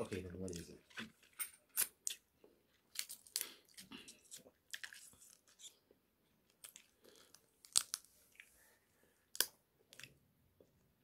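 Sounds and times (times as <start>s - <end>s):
crab shell cracking and crunching: 2.9s - 5.8s, 6.5s - 8.1s, 9.3s - 10.2s.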